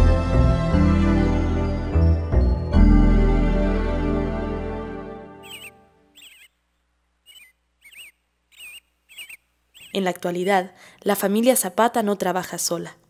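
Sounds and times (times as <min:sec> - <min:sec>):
keyboard chord: 0:00.0 - 0:06.1
squeaky animal chirps: 0:05.4 - 0:06.6, 0:07.2 - 0:10.5.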